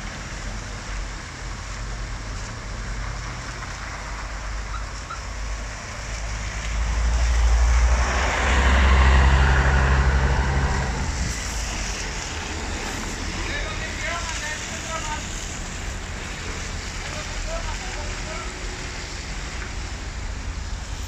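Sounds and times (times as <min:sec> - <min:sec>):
bus diesel engine rumbling: 0:00.0 - 0:21.0
slow traffic: 0:00.0 - 0:21.0
tyres on wet road: 0:00.0 - 0:21.0.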